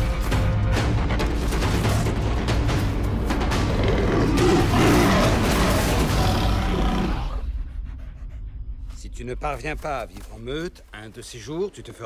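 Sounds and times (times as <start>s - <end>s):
big cat roaring: 3.6s - 7.5s.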